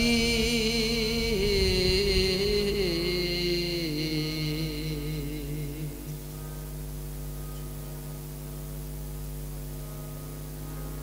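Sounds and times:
harmonium drone: 0.0s - 11.0s.

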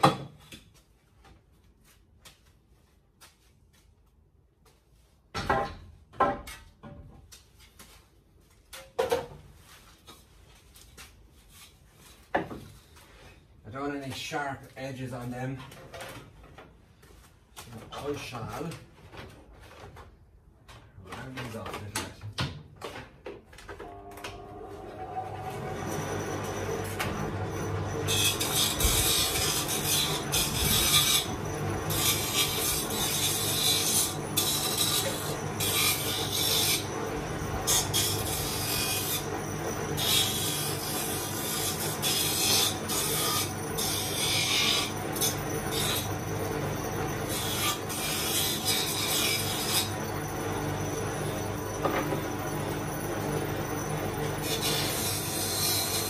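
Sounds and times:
bench abrasive machine humming: 23.8s - 56.0s
wood rasping against abrasive: 25.6s - 38.6s.

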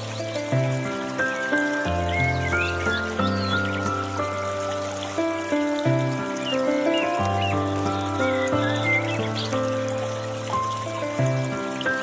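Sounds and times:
slow piano music: 0.0s - 12.0s
water trickling from fountain: 0.0s - 12.0s.

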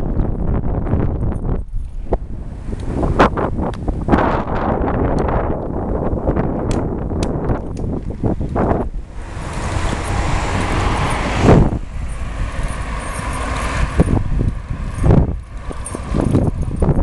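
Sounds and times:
low rumble: 0.0s - 17.0s
road traffic rush: 0.0s - 17.0s
wind buffeting microphone: 0.0s - 17.0s
sharp ticks and rattles: 0.1s - 2.2s, 6.7s - 17.0s.

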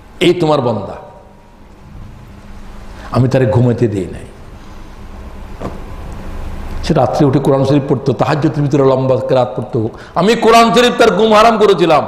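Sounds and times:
man's voice: 6.8s - 12.0s.

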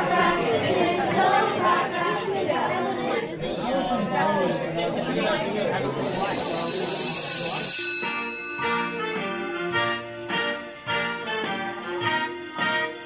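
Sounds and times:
many voices chattering: 0.0s - 13.0s
high bell ringing: 6.0s - 10.8s.

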